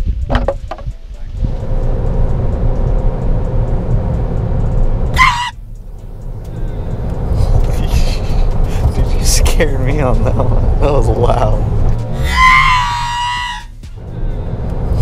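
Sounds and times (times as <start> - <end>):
road and engine rumble in car: 0.0 - 15.0.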